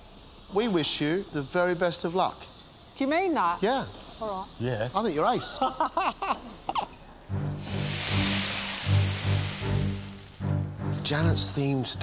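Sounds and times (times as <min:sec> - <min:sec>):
hiss: 0:00.0 - 0:10.6
woman laughing: 0:05.5 - 0:06.7
background music with low held notes: 0:07.2 - 0:12.0.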